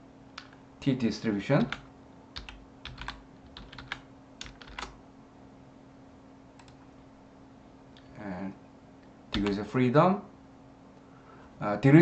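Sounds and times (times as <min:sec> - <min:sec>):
faint steady hum: 0:00.0 - 0:12.0
keyboard typing: 0:01.6 - 0:05.0, 0:06.6 - 0:06.8, 0:09.3 - 0:09.6.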